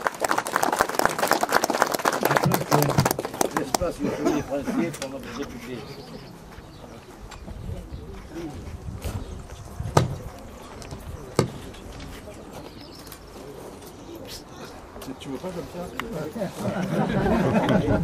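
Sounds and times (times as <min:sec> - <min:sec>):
sharp knocks: 0:09.9 - 0:10.3, 0:11.4 - 0:11.6.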